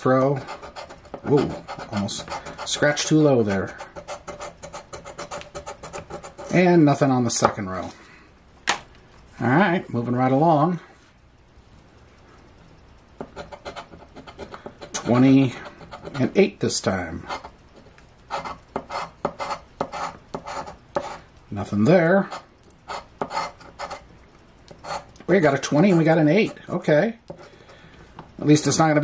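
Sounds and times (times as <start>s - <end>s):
coin scraping scratch-off ticket: 0.3s - 6.7s, 13.3s - 16.4s, 18.3s - 21.2s, 22.3s - 24.0s, 24.7s - 26.6s.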